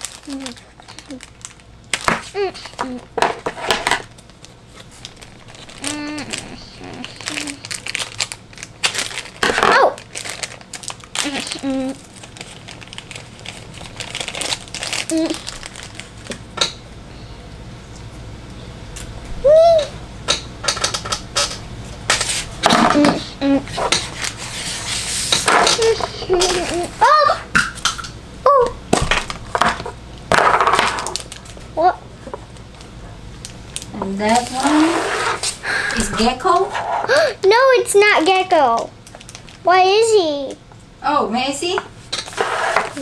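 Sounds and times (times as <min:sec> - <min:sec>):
plastic bag crinkling: 0:00.0 - 0:16.4, 0:29.1 - 0:31.7, 0:33.4 - 0:35.5, 0:39.0 - 0:39.7
plastic capsule rubbing and scraping: 0:42.3 - 0:43.0.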